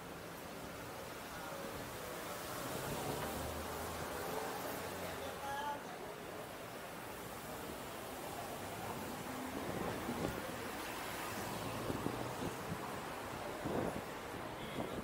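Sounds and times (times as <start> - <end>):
street background: 0.0 - 15.0
wind on microphone: 11.8 - 15.0.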